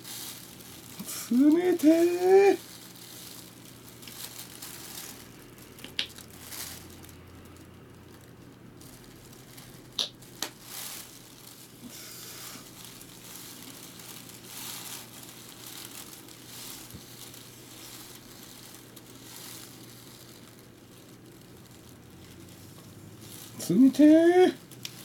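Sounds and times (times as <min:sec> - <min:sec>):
hand rubbing gel on scalp: 0:00.0 - 0:02.8
plastic cape crinkling: 0:00.0 - 0:25.0.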